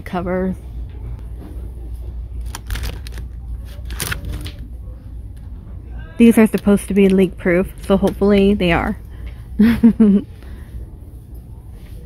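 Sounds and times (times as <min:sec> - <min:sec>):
low store hum: 0:00.0 - 0:12.0
plastic packaging clicks and rustles: 0:02.4 - 0:04.6.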